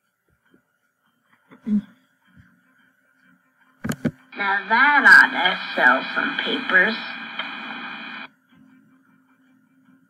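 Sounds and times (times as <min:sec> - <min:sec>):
radio-like recorded voice: 0:04.4 - 0:08.3
faint low hum: 0:04.4 - 0:09.0.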